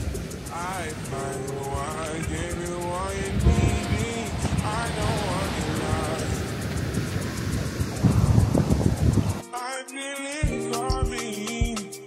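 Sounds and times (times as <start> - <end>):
wind rumbling on microphone: 0.0 - 9.4
background music: 0.0 - 12.0.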